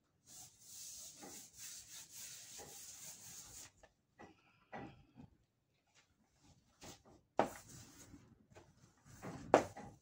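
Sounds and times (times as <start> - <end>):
paintbrush scrubbing through paint: 0.2 - 3.8.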